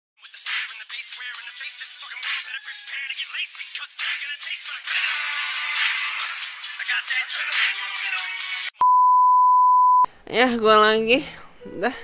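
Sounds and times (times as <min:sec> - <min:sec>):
music: 0:00.2 - 0:08.8
high-pitched censor beep: 0:08.8 - 0:10.1.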